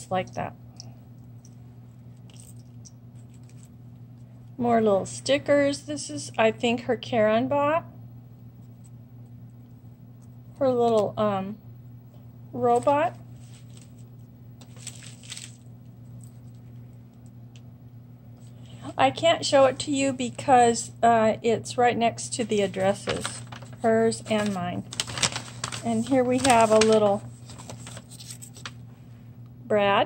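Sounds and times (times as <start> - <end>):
steady low hum: 0.0 - 30.0
paper and plastic rustling: 3.2 - 3.7, 12.7 - 16.6, 22.4 - 28.8.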